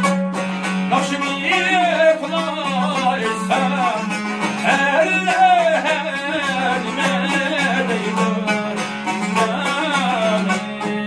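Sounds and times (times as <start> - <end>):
man singing folk melody: 0.0 - 11.0
plucked lutes strummed: 0.0 - 11.0.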